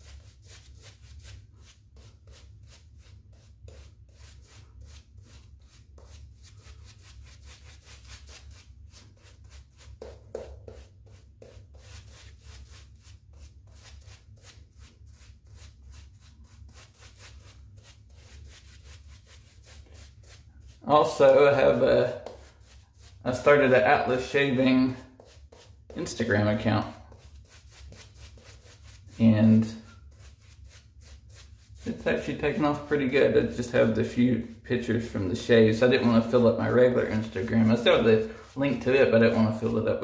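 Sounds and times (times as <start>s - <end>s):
shaving brush scrubbing lather: 0.0s - 40.0s.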